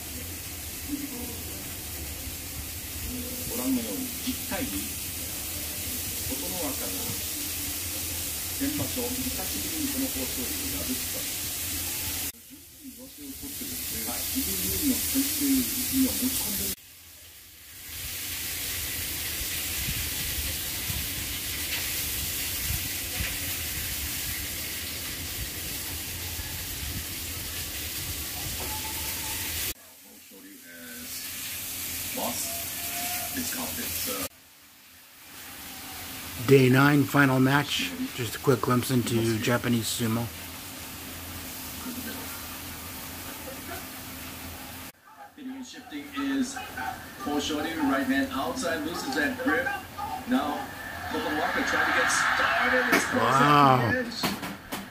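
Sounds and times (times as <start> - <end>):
steady hiss: 0.0 - 45.0, 45.9 - 54.9.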